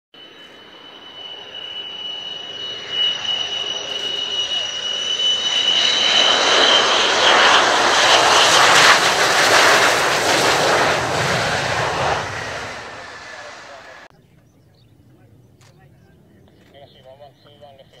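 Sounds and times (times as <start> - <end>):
jet engine whine: 0.1 - 14.1
jet fighter passing: 0.2 - 14.1.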